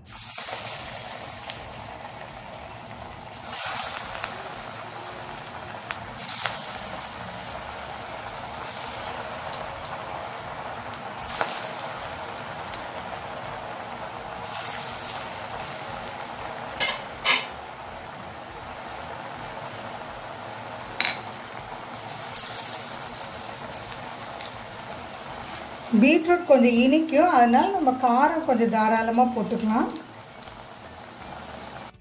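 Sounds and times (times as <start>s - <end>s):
deep-frying in hot oil: 0.0s - 32.0s.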